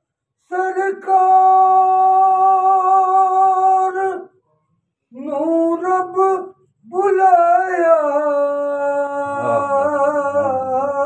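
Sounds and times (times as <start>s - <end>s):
person singing a long note: 9.0s - 11.0s.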